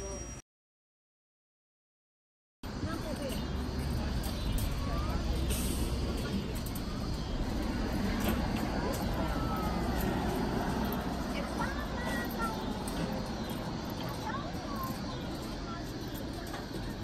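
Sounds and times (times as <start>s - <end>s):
city traffic rumble: 2.6s - 17.0s.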